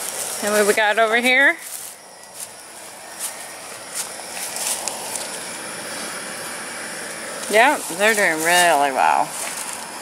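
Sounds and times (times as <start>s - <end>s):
plant leaves rustling: 0.0s - 6.2s, 7.4s - 10.0s.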